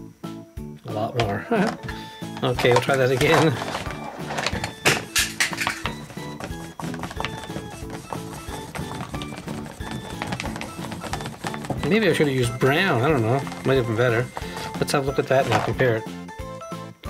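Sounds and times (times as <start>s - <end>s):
background music with simple melody: 0.0s - 17.0s
paintbrush tapping in plastic palette: 1.2s - 16.0s.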